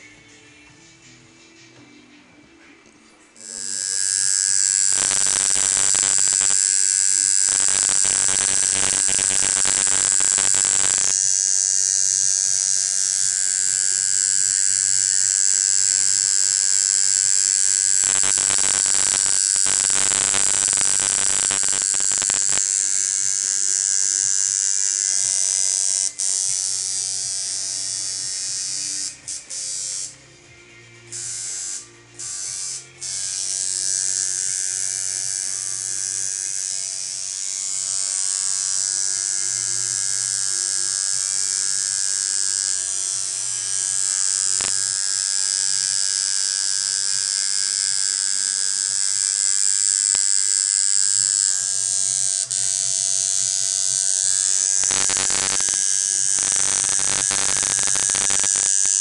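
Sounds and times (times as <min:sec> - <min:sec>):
tattoo machine buzzing: 0:03.4 - 0:59.0.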